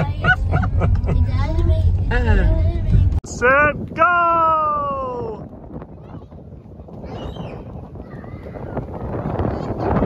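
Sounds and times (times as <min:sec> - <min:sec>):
adults laughing: 0:00.0 - 0:01.3
car interior rumble: 0:00.0 - 0:10.0.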